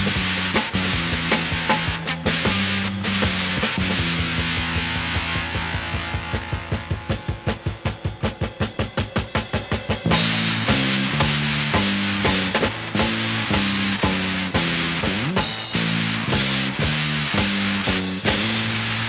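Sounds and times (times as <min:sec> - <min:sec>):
drum kit pattern: 0:00.0 - 0:19.0
psychedelic rock band playing: 0:00.0 - 0:19.0.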